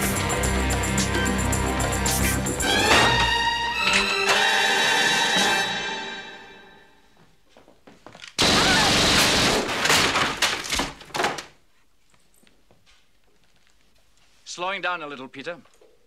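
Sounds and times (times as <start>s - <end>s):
orchestral film score: 0.0s - 7.0s
loud bangs and thuds: 8.4s - 11.4s.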